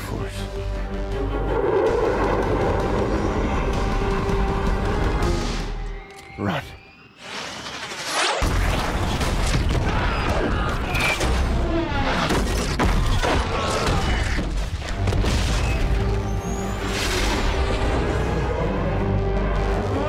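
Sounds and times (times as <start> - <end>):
dramatic orchestral score: 0.0 - 6.9, 8.4 - 20.0.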